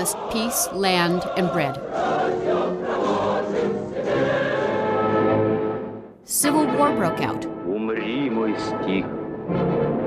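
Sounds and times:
choir singing with music: 0.0 - 10.0.

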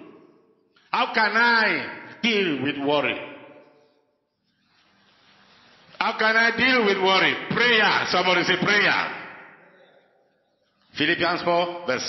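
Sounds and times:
man's voice with room reverb: 0.0 - 4.4, 5.8 - 12.0.

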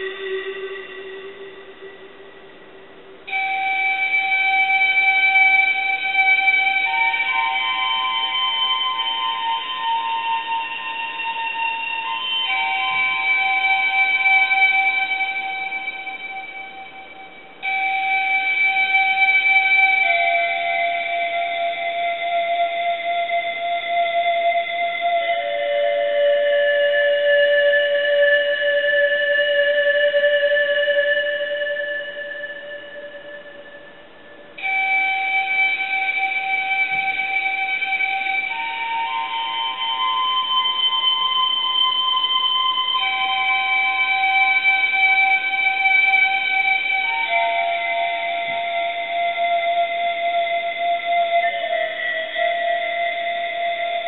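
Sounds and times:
synthesized pan-flute chords: 0.0 - 2.6, 3.2 - 54.0.

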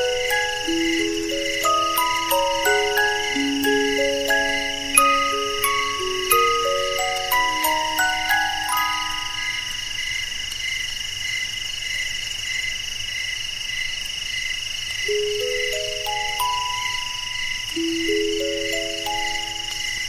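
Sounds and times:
music box notes: 0.0 - 10.0, 15.1 - 20.0
crickets chirping: 0.0 - 20.0.

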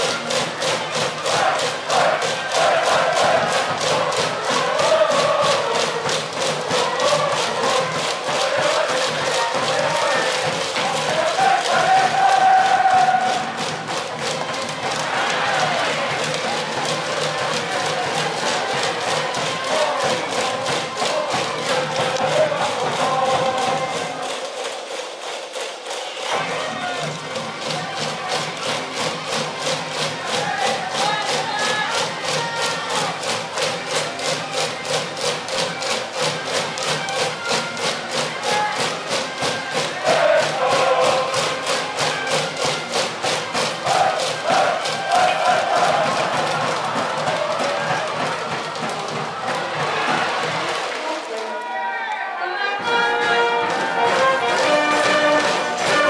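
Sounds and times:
quick drum beat: 0.0 - 24.4, 26.3 - 51.1
crowd chanting and shouting: 0.0 - 56.0
brass band playing: 0.9 - 5.8, 36.8 - 42.9, 43.8 - 48.5, 49.6 - 56.0.

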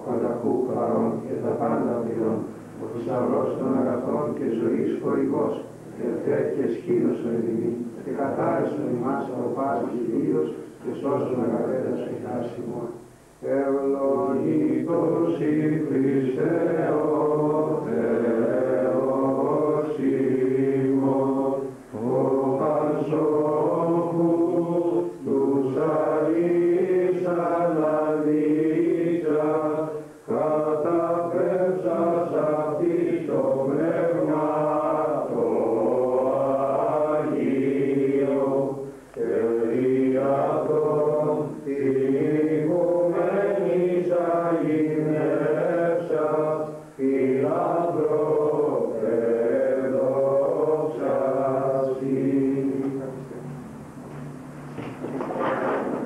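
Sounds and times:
men singing chant: 0.0 - 12.8, 13.4 - 53.3.

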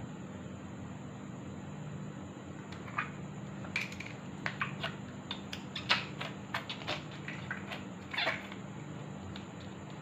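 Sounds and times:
slime squelch: 2.6 - 10.0.

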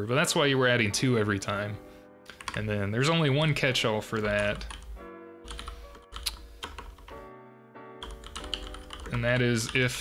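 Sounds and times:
soft background music chords: 0.0 - 10.0
typing on computer keyboard: 2.3 - 2.6, 4.2 - 4.9, 5.5 - 7.2, 8.0 - 9.9.

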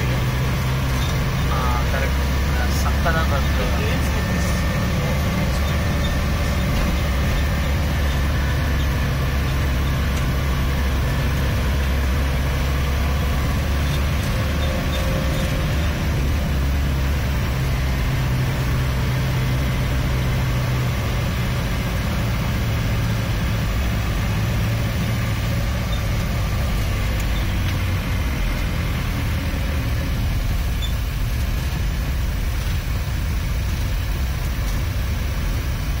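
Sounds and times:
car engine and road rumble: 0.0 - 36.0.

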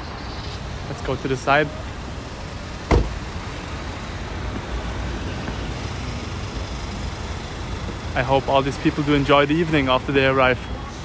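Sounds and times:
cars idling and driving past: 0.0 - 11.0
sharp knock: 2.9 - 3.2.

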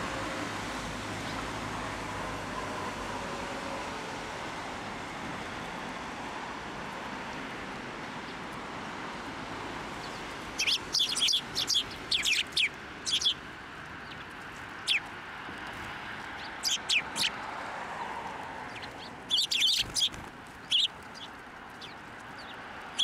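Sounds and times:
steady background noise: 0.0 - 23.0
sparrows chirping: 9.9 - 17.6, 18.5 - 23.0.

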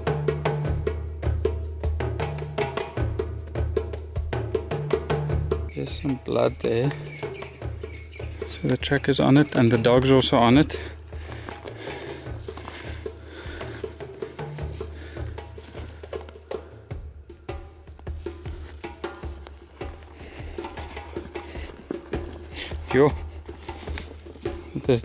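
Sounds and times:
footsteps through dry grass: 6.3 - 25.0.

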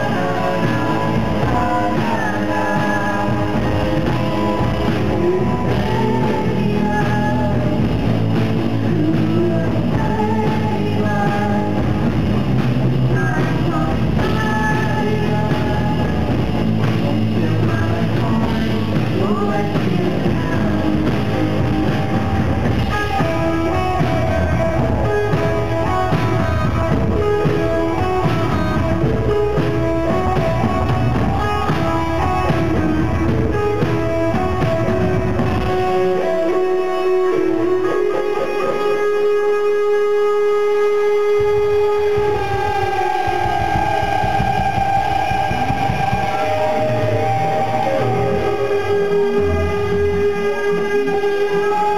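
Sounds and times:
electric guitar: 0.0 - 51.9
live rock band playing: 0.0 - 51.9.

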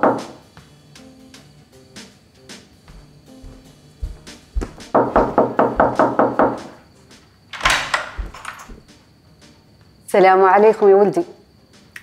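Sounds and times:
music with low beat: 2.5 - 7.3
rapid knocking on door: 4.0 - 6.8, 7.6 - 8.9.

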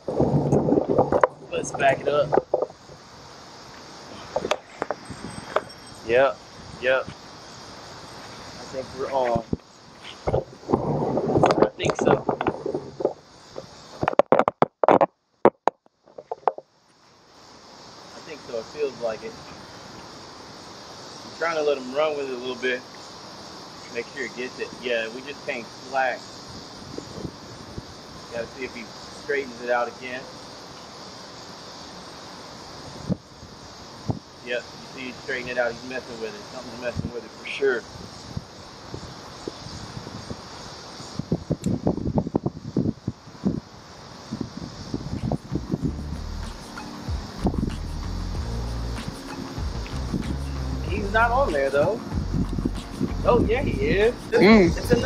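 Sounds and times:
wind buffeting microphone: 0.0 - 3.0, 8.6 - 14.1, 26.5 - 28.0, 37.9 - 40.5, 41.1 - 46.2, 47.2 - 48.4, 49.7 - 55.0
faint steady hiss: 0.0 - 15.4, 16.0 - 55.0.

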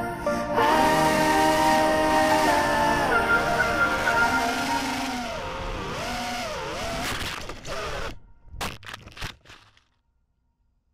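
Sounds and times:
quadcopter motors whining: 0.6 - 8.2.

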